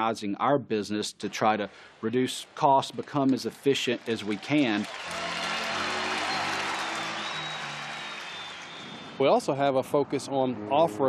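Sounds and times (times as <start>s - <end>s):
stadium crowd cheering: 2.2s - 9.7s.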